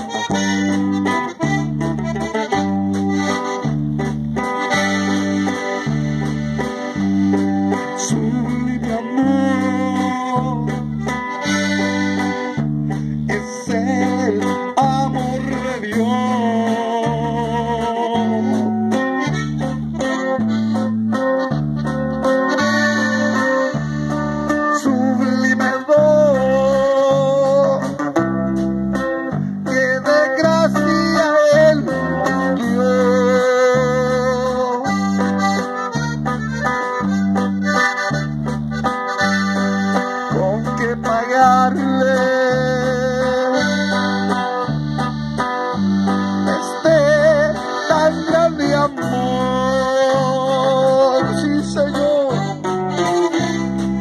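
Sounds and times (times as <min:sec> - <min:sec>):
accordion: 0:00.0 - 0:54.0
guitar: 0:00.0 - 0:54.0
steady bass rhythm: 0:00.0 - 0:54.0.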